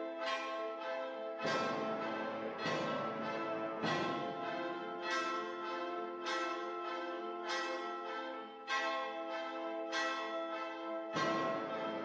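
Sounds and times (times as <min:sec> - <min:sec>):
brass and wind ensemble chords: 0:00.0 - 0:12.0.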